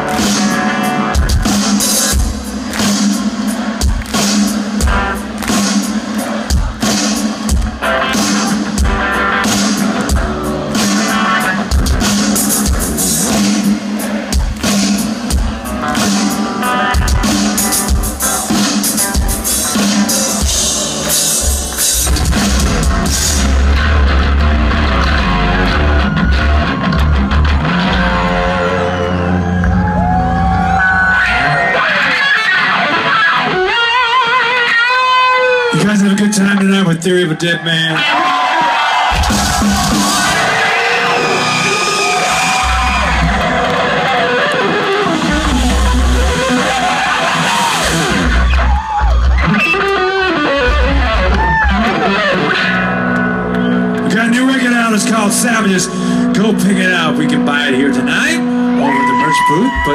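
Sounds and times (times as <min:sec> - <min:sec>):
bass guitar: 0:00.0 - 0:36.0, 0:38.0 - 0:59.9
drums: 0:00.0 - 0:59.9
rock band playing live: 0:00.0 - 0:59.9
electric guitar solo: 0:15.7 - 0:36.6, 0:39.2 - 0:54.1, 0:55.4 - 0:59.9
heavy kick drum beat: 0:39.1 - 0:40.4.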